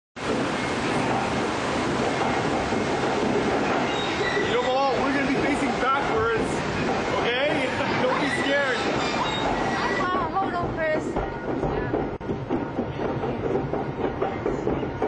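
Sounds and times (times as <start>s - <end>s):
water running down ramp: 0.2s - 12.4s
conveyor lift rumbling: 0.2s - 15.0s.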